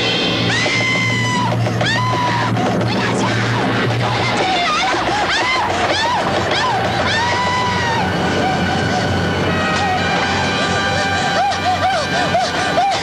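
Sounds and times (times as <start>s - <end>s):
drama soundtrack music: 0.0s - 13.0s
woman wailing and sobbing: 0.5s - 13.0s.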